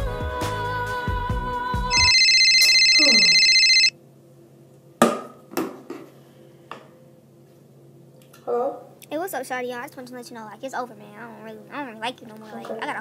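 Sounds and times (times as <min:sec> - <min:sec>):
soul music with singing: 0:00.0 - 0:02.4
electronic phone ringtone: 0:01.9 - 0:03.9.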